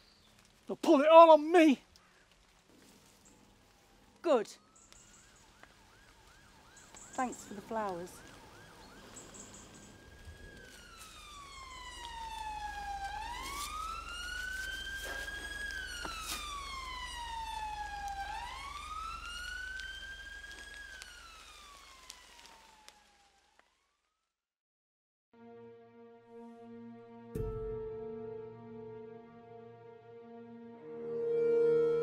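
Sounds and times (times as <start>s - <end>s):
emergency siren wailing: 4.6s - 23.7s, 27.6s - 32.0s.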